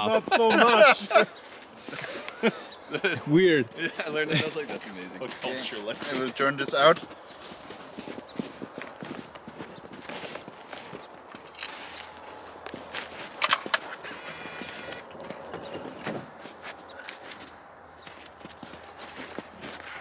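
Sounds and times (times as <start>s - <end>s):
footsteps crunching in snow: 3.9s - 20.0s
sharp clicks: 13.3s - 15.8s.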